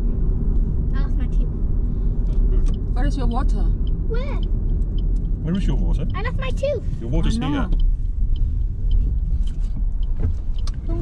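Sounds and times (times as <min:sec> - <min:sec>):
car engine and tyres rumbling: 0:00.0 - 0:11.0
faint ticks: 0:07.7 - 0:11.0.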